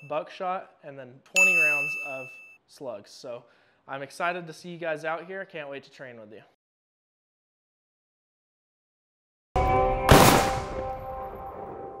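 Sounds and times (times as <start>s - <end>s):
sharp gunshot-like hit ringing: 10.0s - 11.8s.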